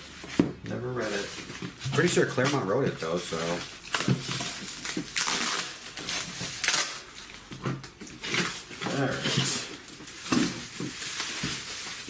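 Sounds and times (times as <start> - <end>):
plastic packaging crinkling: 1.0 - 12.0.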